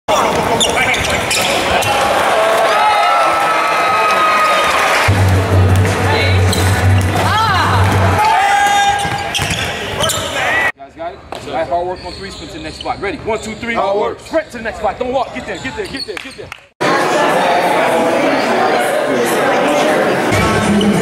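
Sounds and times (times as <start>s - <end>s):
sneakers squeaking: 0.1s - 2.1s, 5.7s - 16.6s
music: 5.1s - 8.2s
basketball bouncing on court: 5.1s - 10.3s.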